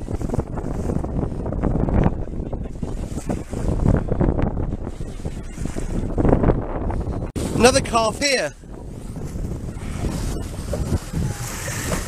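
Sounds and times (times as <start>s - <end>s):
water washing along boat hull: 0.0s - 12.0s
wind buffeting microphone: 0.0s - 12.0s.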